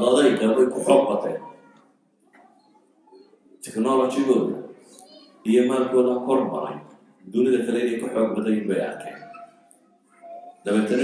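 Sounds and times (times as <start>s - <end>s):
man lecturing: 0.0s - 1.5s, 3.6s - 4.7s, 5.5s - 9.3s, 10.7s - 11.0s.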